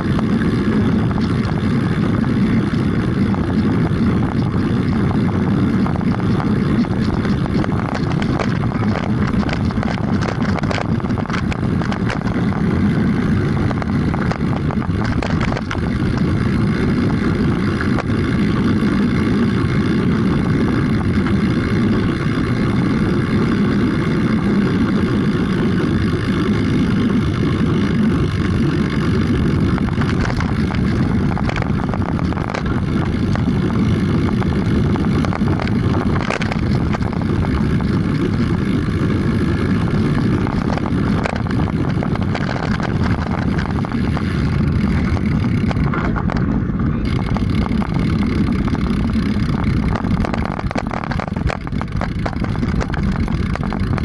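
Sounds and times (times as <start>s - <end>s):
knocks and rattles: 0.0s - 18.2s, 29.2s - 54.0s
road rumble: 0.0s - 54.0s
wind rushing over microphone: 0.0s - 54.0s.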